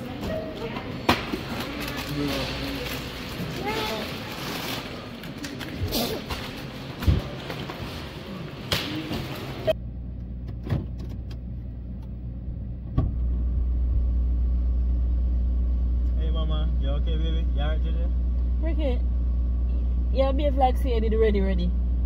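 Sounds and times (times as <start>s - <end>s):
car engine idling: 9.7s - 22.0s.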